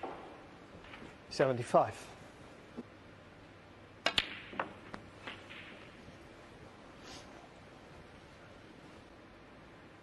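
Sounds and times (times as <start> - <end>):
snooker balls clicking: 4.0 - 6.1.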